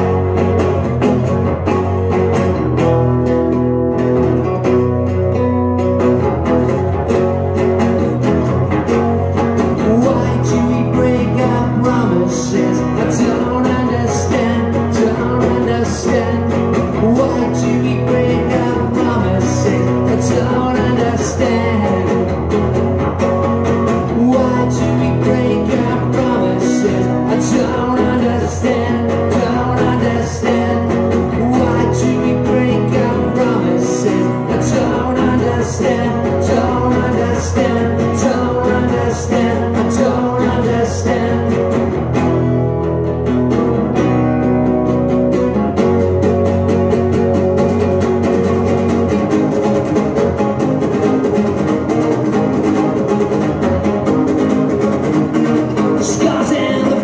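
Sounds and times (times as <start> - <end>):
acoustic guitars strumming: 0.0 - 57.0.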